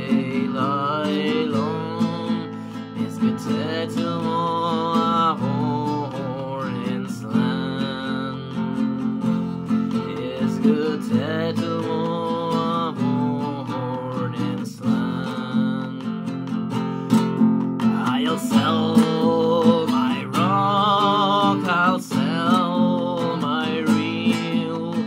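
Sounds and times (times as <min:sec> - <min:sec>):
person singing long held notes: 0:00.0 - 0:16.1, 0:17.8 - 0:25.0
classical guitar strumming chords: 0:00.0 - 0:25.0.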